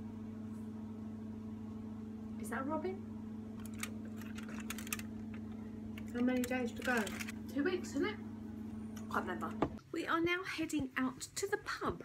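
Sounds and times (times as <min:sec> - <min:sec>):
steady low hum: 0:00.0 - 0:12.0
cardboard and foil clicks and crackles: 0:03.6 - 0:05.4, 0:06.0 - 0:07.4.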